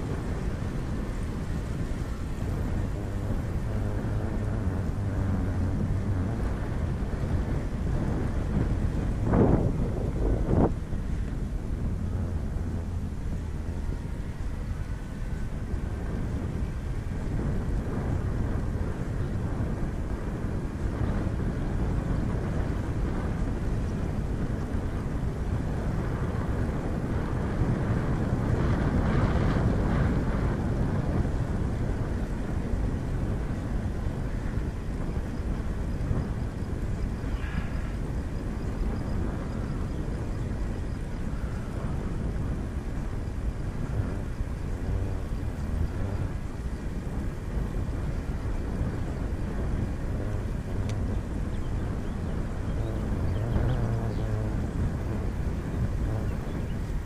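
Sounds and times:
road and engine rumble: 0.0s - 57.0s
wind on microphone: 0.0s - 57.0s.

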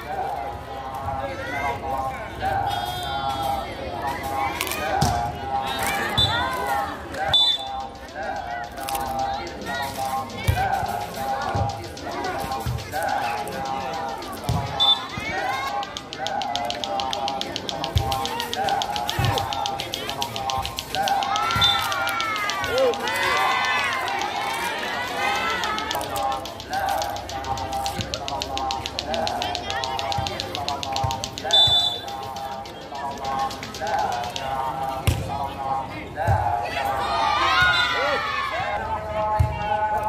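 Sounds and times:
spectators shouting and cheering: 0.0s - 40.0s
volleyball being struck: 16.2s - 22.9s, 35.0s - 35.4s
high whistle blasts: 31.5s - 32.1s.

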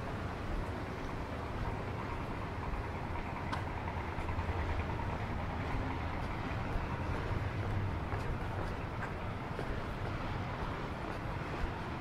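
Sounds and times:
steady low city rumble: 0.0s - 12.0s.

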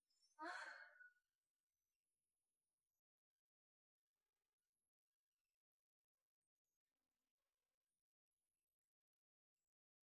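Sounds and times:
woman sighing: 0.4s - 1.0s.

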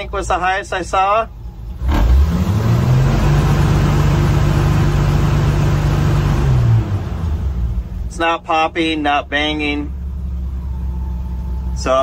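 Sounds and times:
truck engine revving at limiter: 1.7s - 12.0s.

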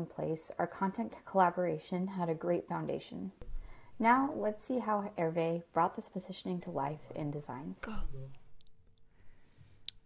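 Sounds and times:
voice: 0.0s - 3.4s, 4.0s - 8.4s.

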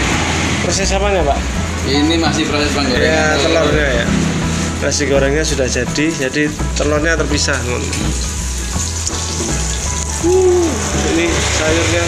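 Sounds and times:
egg sizzling in hot oil: 5.9s - 12.0s.

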